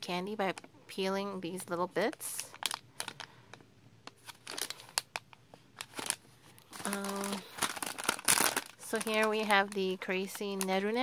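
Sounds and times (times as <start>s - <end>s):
plastic packet crinkling: 2.0s - 11.0s.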